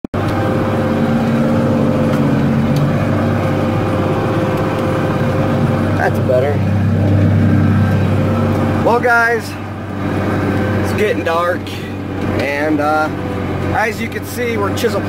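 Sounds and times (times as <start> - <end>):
tractor diesel engine under load: 0.1 - 15.0.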